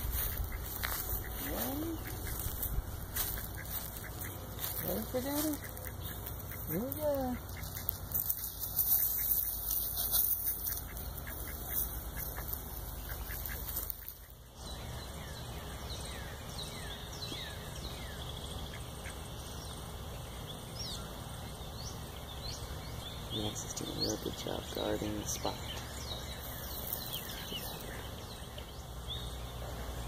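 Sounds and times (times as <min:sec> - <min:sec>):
ducks quacking: 0:00.0 - 0:14.6, 0:18.6 - 0:19.3.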